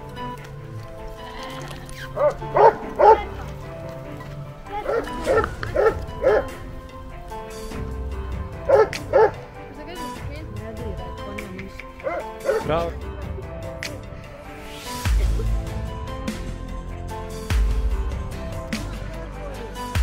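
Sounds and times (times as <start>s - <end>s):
background music: 0.0s - 20.0s
dog barking: 2.2s - 3.6s, 4.7s - 6.6s, 8.6s - 9.6s, 12.0s - 12.7s.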